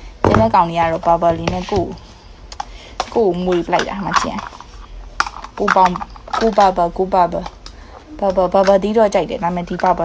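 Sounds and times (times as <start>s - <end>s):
person speaking: 0.2s - 2.2s, 2.8s - 4.8s, 5.5s - 10.0s.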